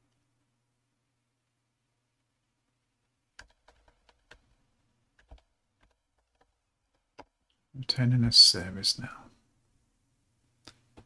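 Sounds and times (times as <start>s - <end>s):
computer keyboard key presses: 3.4s - 4.6s, 5.2s - 7.4s.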